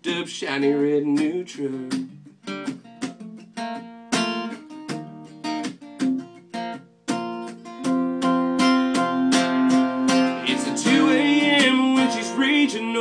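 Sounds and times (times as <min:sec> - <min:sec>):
acoustic guitar strumming chords: 0:00.0 - 0:13.0.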